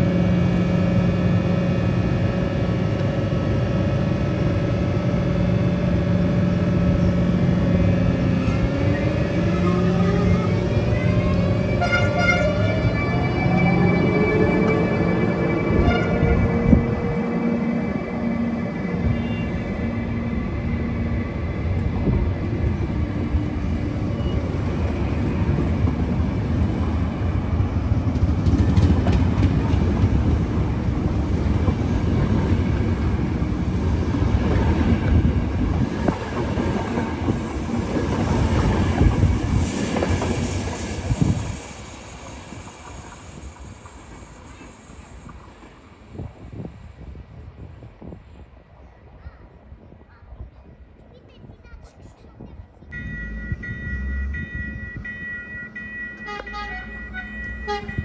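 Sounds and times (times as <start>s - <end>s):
train wheels rumbling and clicking: 21.5s - 46.8s, 55.0s - 58.0s.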